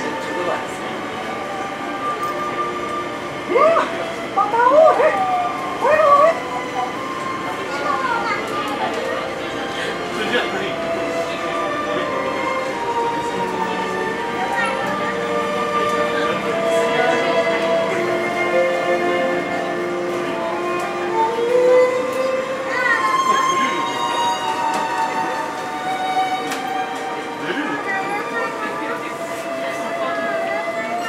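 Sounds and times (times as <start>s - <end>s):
monorail electric drive whining: 0.0s - 31.0s
train car running noise: 0.0s - 31.0s.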